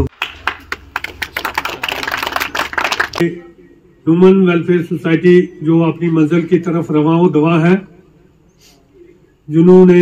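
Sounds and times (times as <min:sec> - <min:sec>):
audience applauding: 0:00.1 - 0:03.2.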